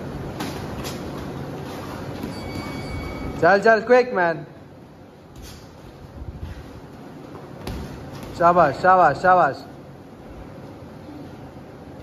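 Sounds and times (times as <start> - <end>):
fan running: 0.0 - 12.0.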